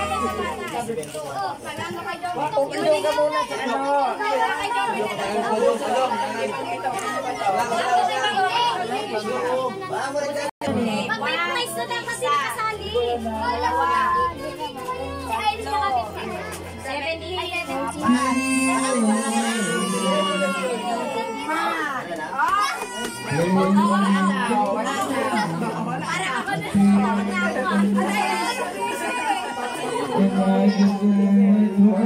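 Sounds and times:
children shouting and talking: 0.0s - 32.0s.

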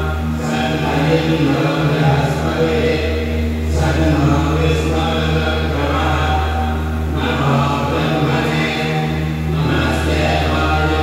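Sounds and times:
steady low drone: 0.0s - 11.0s
man chanting: 0.4s - 11.0s.

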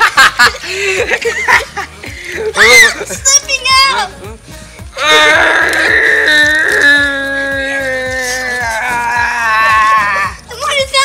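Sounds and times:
child wailing: 5.0s - 10.5s.

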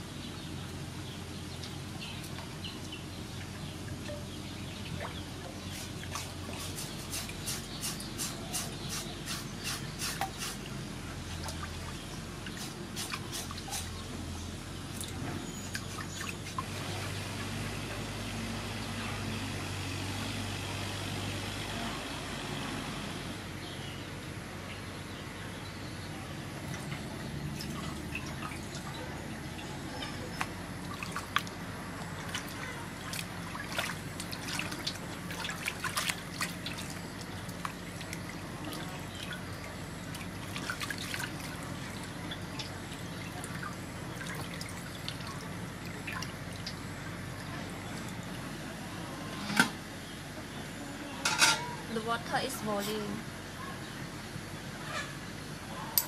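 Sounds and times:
sloshing and trickling water: 0.0s - 21.9s, 26.2s - 50.6s.

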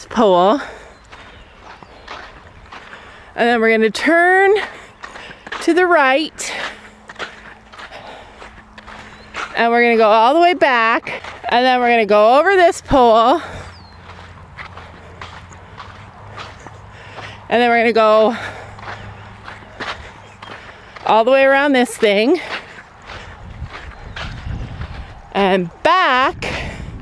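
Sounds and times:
footsteps on soft dirt: 0.0s - 27.0s.

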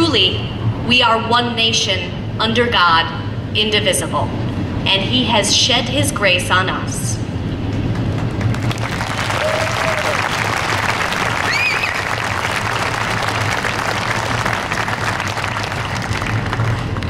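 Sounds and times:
audience applauding: 7.7s - 17.0s.

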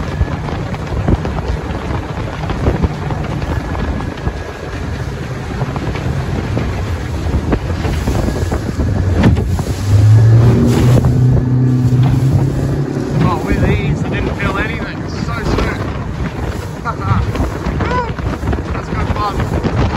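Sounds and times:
boat hull knocking on waves: 0.0s - 19.9s
outboard engine: 0.0s - 19.9s
wind rushing on microphone: 0.0s - 19.9s.

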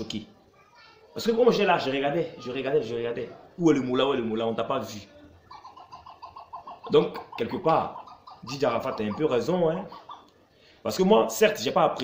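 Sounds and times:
bird calling rapid notes: 5.5s - 10.3s.

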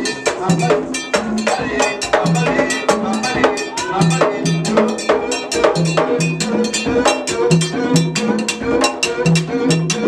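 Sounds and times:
metal bell struck in steady beat: 0.0s - 9.9s
drums: 0.0s - 10.0s
voices singing: 0.0s - 10.0s.

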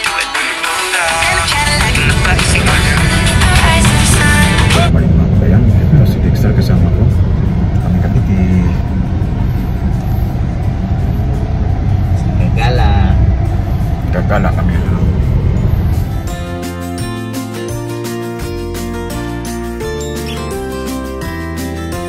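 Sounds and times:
background music: 0.0s - 4.9s, 6.9s - 22.0s
road rumble inside car: 1.3s - 16.5s.

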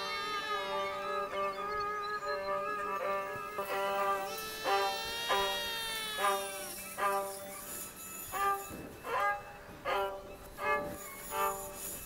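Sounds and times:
violin playing sliding notes: 0.0s - 12.0s.

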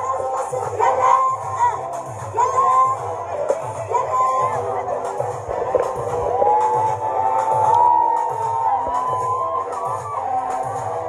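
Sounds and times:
faint crowd noise: 0.0s - 11.0s
loud live dance music: 0.0s - 11.0s.

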